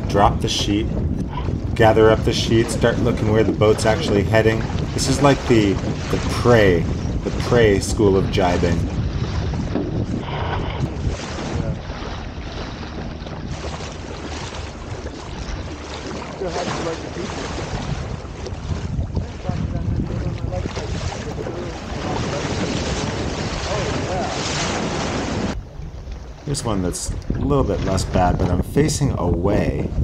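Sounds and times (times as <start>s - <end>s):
water splashing along hull: 0.0s - 30.0s
wind buffeting microphone: 0.0s - 30.0s.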